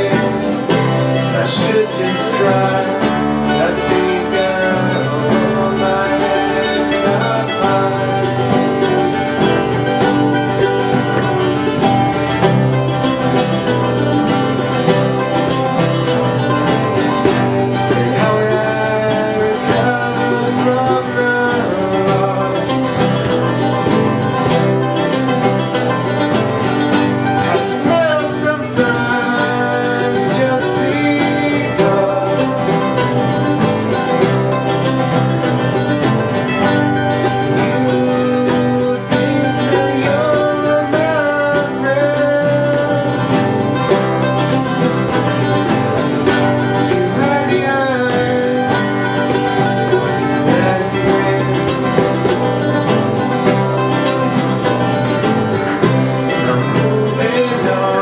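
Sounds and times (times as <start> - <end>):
mandolin picking: 0.0 - 58.0
strummed acoustic guitars: 0.0 - 58.0.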